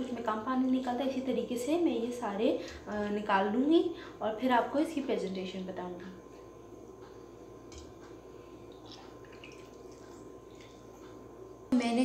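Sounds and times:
water dripping into bowl: 0:08.7 - 0:11.2.

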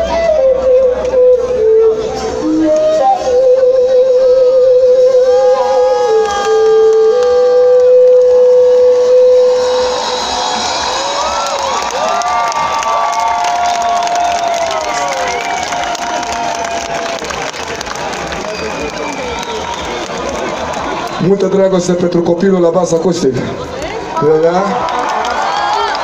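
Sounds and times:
live band playing: 0:00.0 - 0:24.8
crowd cheering and whooping: 0:05.0 - 0:21.7, 0:24.2 - 0:26.0.

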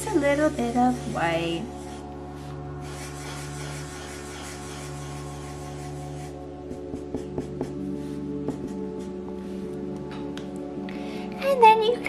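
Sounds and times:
marker scratching on paper: 0:00.0 - 0:09.7
soft background music: 0:00.0 - 0:12.0.

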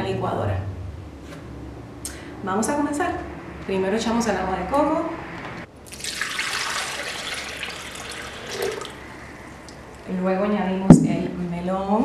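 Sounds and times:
liquid pouring into blender jar: 0:05.9 - 0:09.2.

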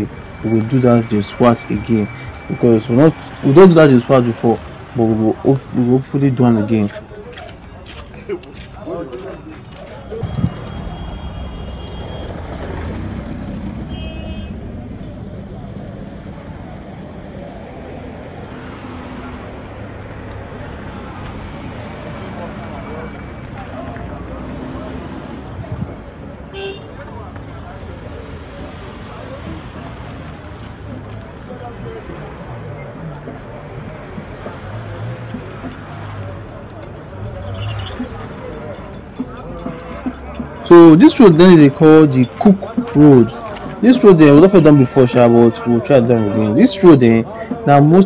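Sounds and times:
traffic rumble: 0:00.0 - 0:48.0
background voices: 0:30.8 - 0:48.0.

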